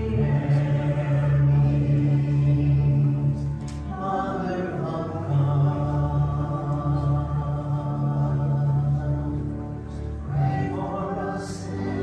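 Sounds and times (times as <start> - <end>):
hymn singing with accompaniment: 0.0 - 12.0.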